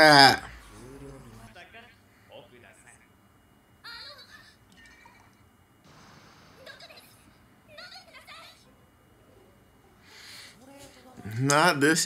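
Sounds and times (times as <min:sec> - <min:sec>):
girl speaking: 0:06.6 - 0:08.7.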